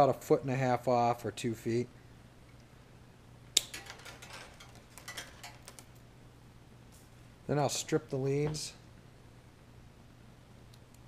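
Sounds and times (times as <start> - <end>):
wire cutters snipping: 3.6 - 5.9.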